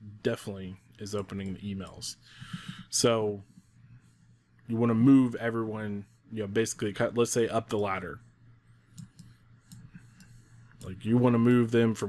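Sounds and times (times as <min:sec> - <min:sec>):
person speaking: 0:00.0 - 0:03.5, 0:04.6 - 0:08.3, 0:10.0 - 0:12.0.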